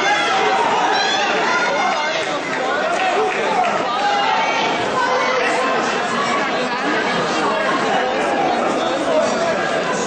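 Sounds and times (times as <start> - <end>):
babble of chatter: 0.0 - 10.0.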